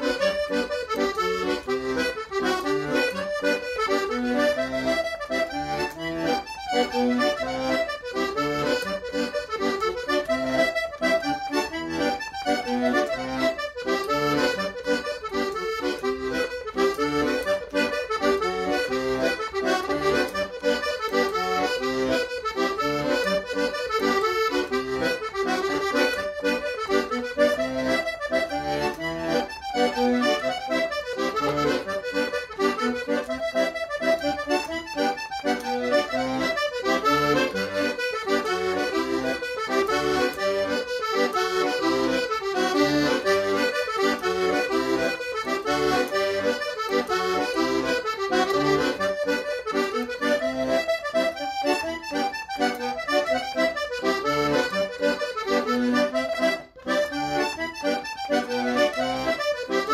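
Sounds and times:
piano accordion playing folk tune: 0:00.0 - 0:59.9.

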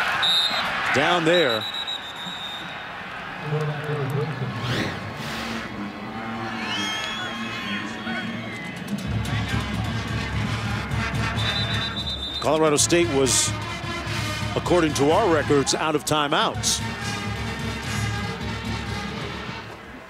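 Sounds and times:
background music: 0:04.2 - 0:20.0.

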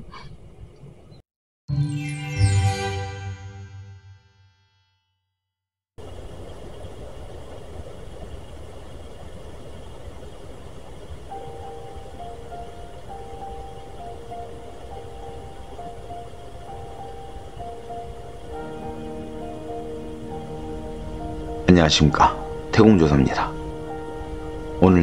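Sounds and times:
faint simple melody: 0:01.7 - 0:05.4, 0:11.2 - 0:25.0.

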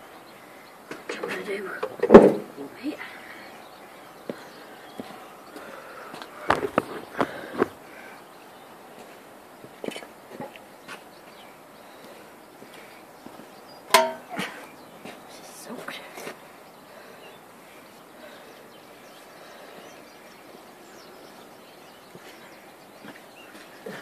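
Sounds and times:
footsteps on gravel: 0:04.3 - 0:07.8
handsaw clack and ringing: 0:13.9 - 0:14.3.

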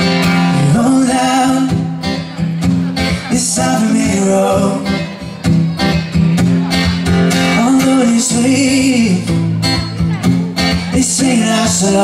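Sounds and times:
man singing: 0:00.0 - 0:05.8, 0:07.3 - 0:12.0
acoustic guitar strumming: 0:00.0 - 0:12.0.

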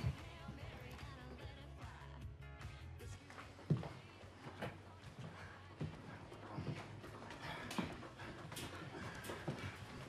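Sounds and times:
footsteps on wooden floor: 0:00.0 - 0:01.1, 0:03.1 - 0:10.0.

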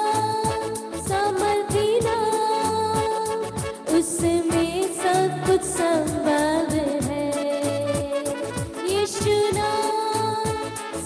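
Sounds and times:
backing music with drum beat: 0:00.0 - 0:11.0
woman singing into microphone: 0:00.0 - 0:11.0.

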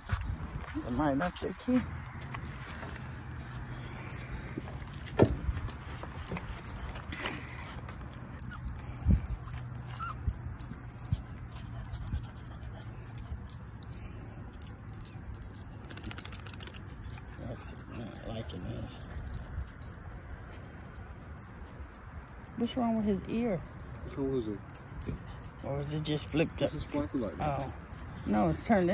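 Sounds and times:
keys jingling: 0:00.0 - 0:28.9.

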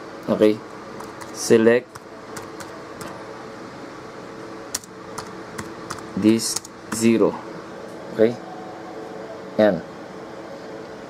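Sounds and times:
steady background hum: 0:00.0 - 0:11.0
laptop keystroke: 0:04.7 - 0:07.1.

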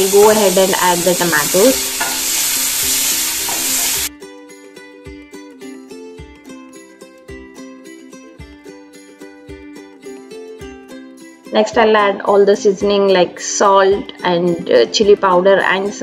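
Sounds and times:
vegetables sizzling in hot oil: 0:00.0 - 0:04.1
plucked string background music: 0:00.1 - 0:16.0.

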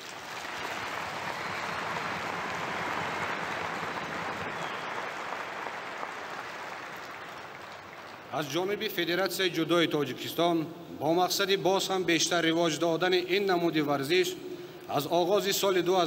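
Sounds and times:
arena crowd applauding: 0:00.0 - 0:08.6.

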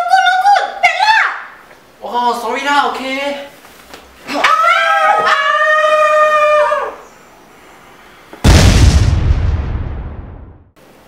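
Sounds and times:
high-pitched wordless yell: 0:00.0 - 0:02.9, 0:04.3 - 0:07.0.

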